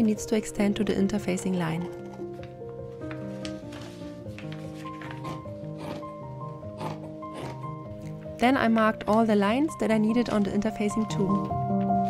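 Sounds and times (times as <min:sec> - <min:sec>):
soft piano music: 0:00.0 - 0:12.0.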